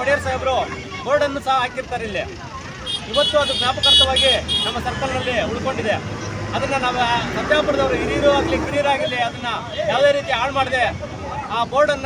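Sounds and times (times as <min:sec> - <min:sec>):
road traffic hum: 0:00.0 - 0:12.0
man speaking: 0:03.0 - 0:12.0.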